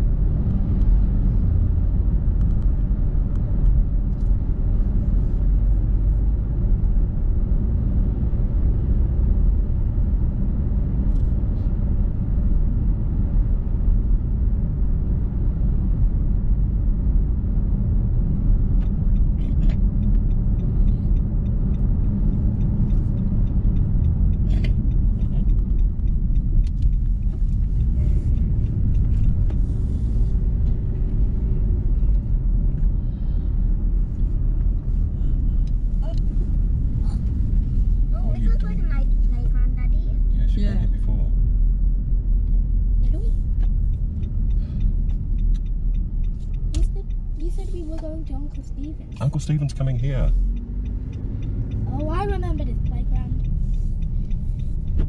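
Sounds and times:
car engine and tyre noise: 0:00.0 - 0:55.0.

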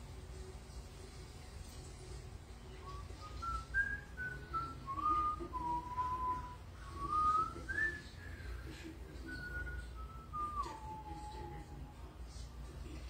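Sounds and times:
person whistling a slow tune: 0:02.9 - 0:08.6, 0:09.2 - 0:11.6.

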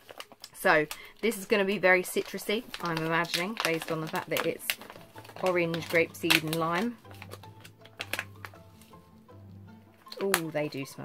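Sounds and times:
pouch clicks and crinkles: 0:00.0 - 0:09.2, 0:09.9 - 0:11.0
quiet background music: 0:00.0 - 0:11.0.

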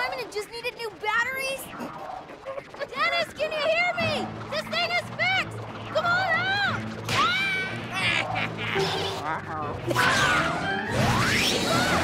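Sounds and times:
cartoon background music: 0:02.7 - 0:12.0
character yelps: 0:09.9 - 0:10.7.

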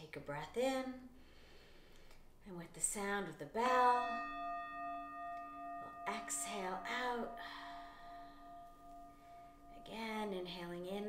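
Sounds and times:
meditation bell ringing: 0:03.6 - 0:11.0.

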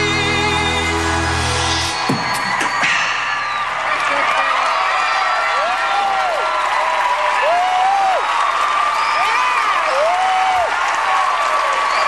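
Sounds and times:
audience applauding and cheering: 0:00.0 - 0:12.0
long whoops: 0:01.9 - 0:10.8.

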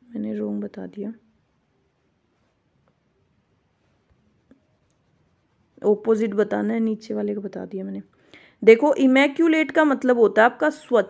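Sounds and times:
woman speaking: 0:00.0 - 0:01.2, 0:05.8 - 0:11.0.

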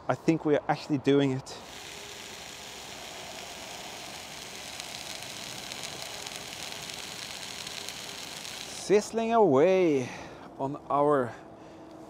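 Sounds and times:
hot dogs sizzling in a pan: 0:01.6 - 0:08.9.

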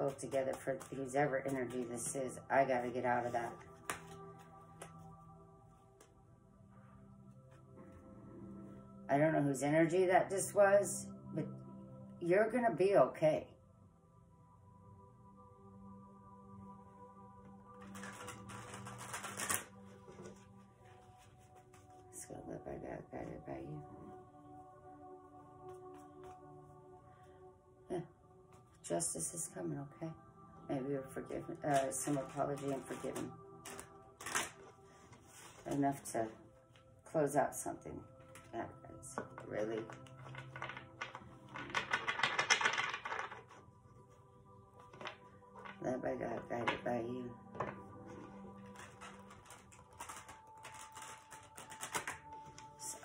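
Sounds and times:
soft background music: 0:00.0 - 0:53.0
cards being shuffled: 0:03.4 - 0:05.1, 0:17.8 - 0:20.6, 0:31.8 - 0:35.7, 0:39.2 - 0:43.6, 0:48.6 - 0:52.8
cards being riffle-shuffled: 0:17.8 - 0:20.4.

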